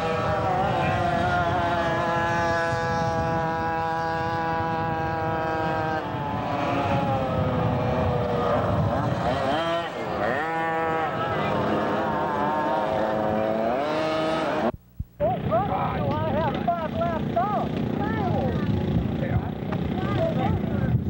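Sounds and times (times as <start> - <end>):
go-kart engine accelerating: 0.0 - 14.7, 15.3 - 20.9
engine revving: 0.0 - 21.0.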